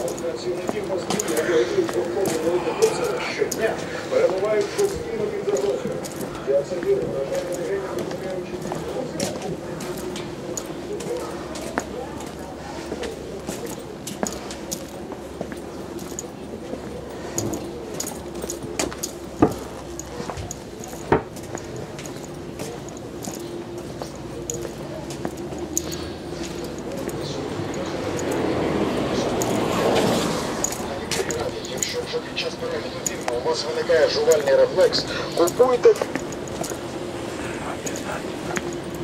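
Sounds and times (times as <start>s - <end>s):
indistinct voices: 0.0s - 39.0s
light footsteps: 0.0s - 39.0s.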